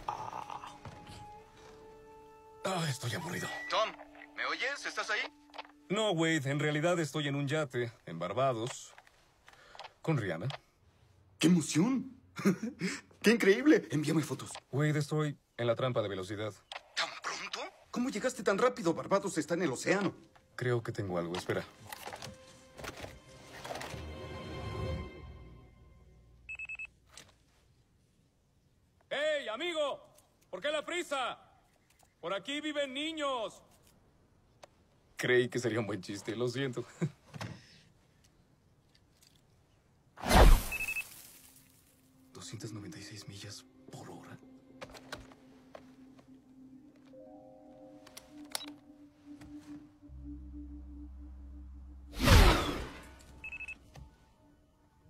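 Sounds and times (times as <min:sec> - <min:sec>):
radar gun beeping: 0:03.3 - 0:04.0
radar speed gun beeps: 0:40.7 - 0:41.1
low steady drone: 0:48.8 - 0:53.4.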